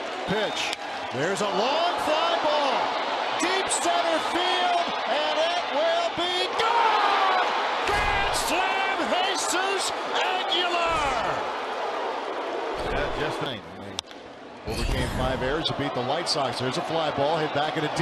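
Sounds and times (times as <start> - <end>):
stadium crowd: 0.0 - 18.0.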